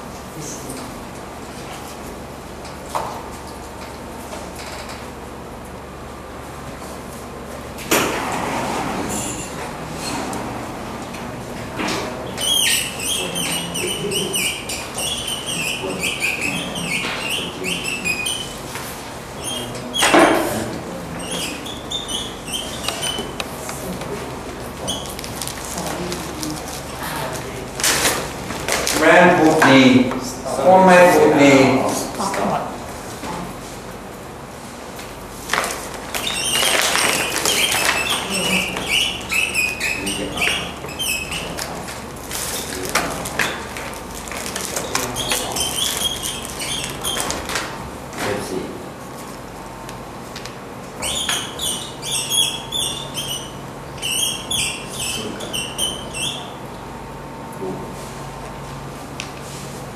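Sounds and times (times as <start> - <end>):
marker squeaking on whiteboard: 12.2 - 20.4, 21.1 - 23.8, 24.8 - 25.6, 36.1 - 42.7, 44.7 - 47.6, 51.0 - 56.6.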